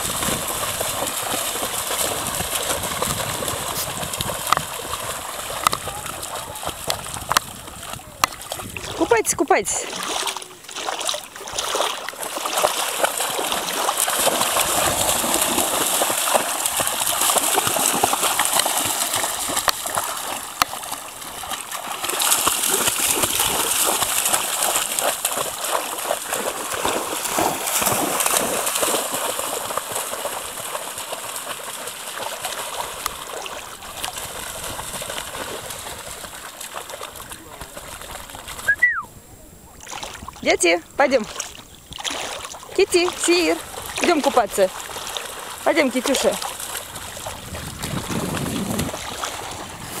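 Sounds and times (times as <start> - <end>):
dogs splashing through water: 0.0 - 39.0, 39.7 - 50.0.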